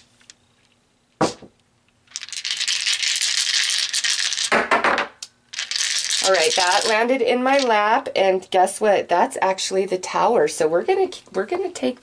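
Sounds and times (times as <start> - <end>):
dice shaken in hands: 2.1 - 4.8, 5.5 - 7.7.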